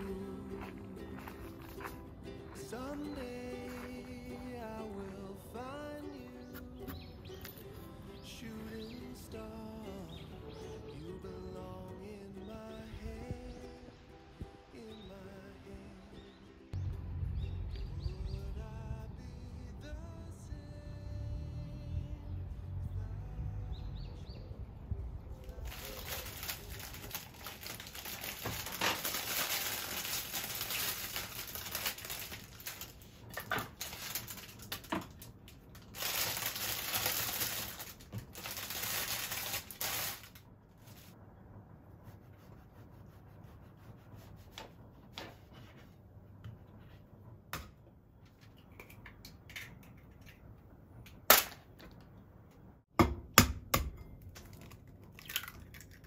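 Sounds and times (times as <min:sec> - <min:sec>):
low rumble: 0:16.8 - 0:30.4
plastic bag crinkling: 0:25.6 - 0:40.4.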